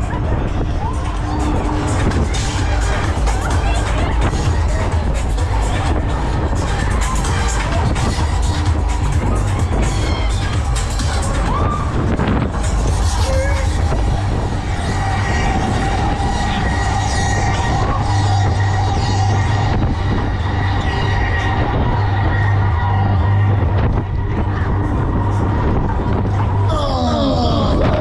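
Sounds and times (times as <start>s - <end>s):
dense rushing noise: 0.0s - 28.0s
loud fairground music: 0.0s - 28.0s
ride low hum: 0.0s - 28.0s.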